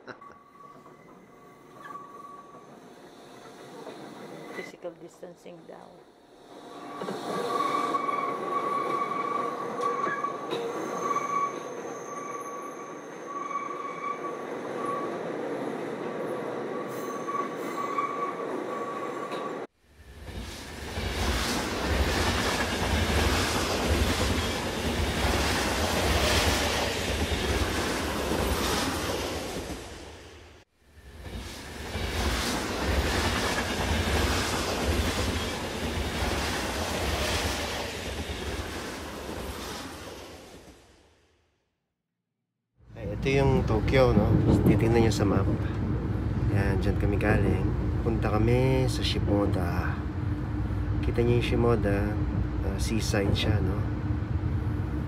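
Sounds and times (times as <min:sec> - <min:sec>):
train rumbling: 0:00.0 - 0:41.1, 0:42.9 - 0:55.0
train hum with high whine: 0:43.0 - 0:55.0.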